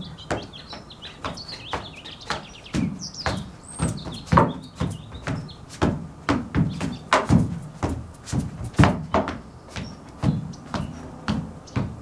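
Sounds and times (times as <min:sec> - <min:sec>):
dance steps on wooden deck: 0:00.0 - 0:12.0.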